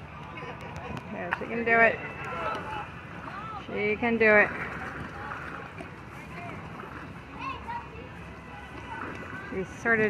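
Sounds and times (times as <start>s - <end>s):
pool water spraying and splashing: 0.0s - 10.0s.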